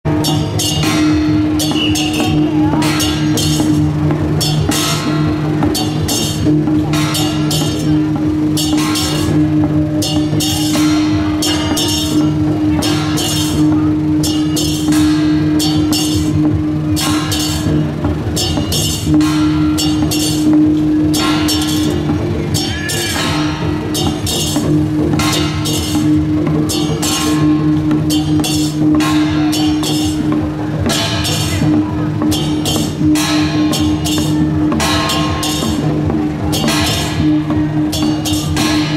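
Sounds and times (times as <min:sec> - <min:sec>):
drumming with crashes: 0:00.0 - 0:38.9
low droning tone: 0:00.1 - 0:38.9.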